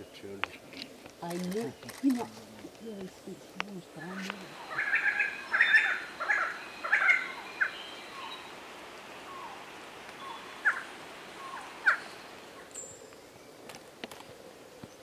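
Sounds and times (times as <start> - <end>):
bird chirping: 0.0 - 13.7.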